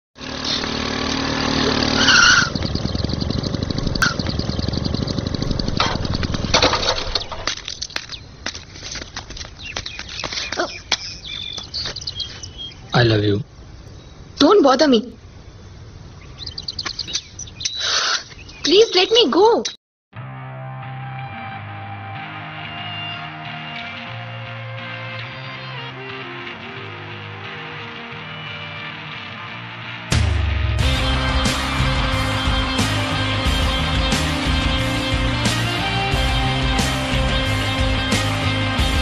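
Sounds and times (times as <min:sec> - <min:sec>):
motorcycle engine running: 0:00.2 - 0:07.4, 0:30.1 - 0:39.0
small bird chirping: 0:01.9 - 0:05.7, 0:07.1 - 0:08.4, 0:09.1 - 0:14.4, 0:16.1 - 0:19.8.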